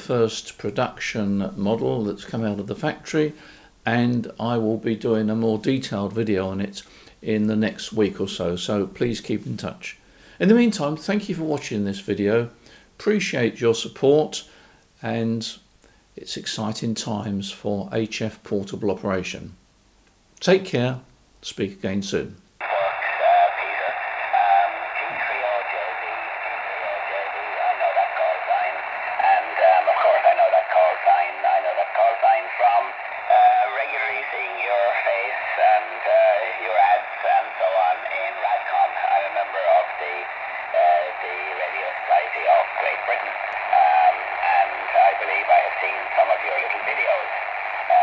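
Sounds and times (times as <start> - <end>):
man's voice over radio: 22.6 - 48.0
radio receiver hiss: 22.6 - 48.0.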